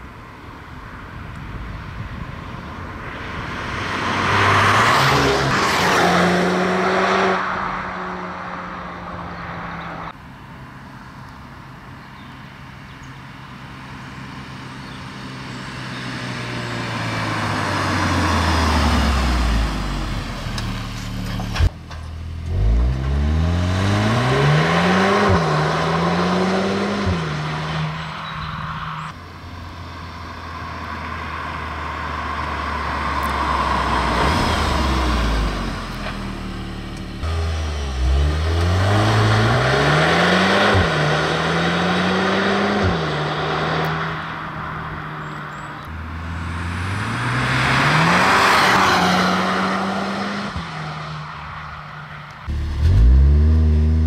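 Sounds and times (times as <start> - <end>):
car accelerating hard: 3.3 - 9.7, 22.5 - 28.1, 31.8 - 44.4, 46.1 - 51.4, 52.5 - 54.0.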